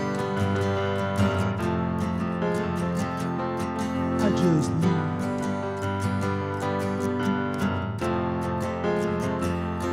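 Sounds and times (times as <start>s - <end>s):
acoustic guitar strumming: 0.0s - 9.9s
sustained keyboard chords: 0.0s - 9.9s.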